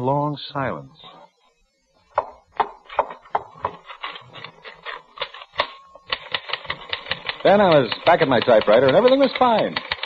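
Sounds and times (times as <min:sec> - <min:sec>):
typewriter keys clicking: 0:06.1 - 0:10.0.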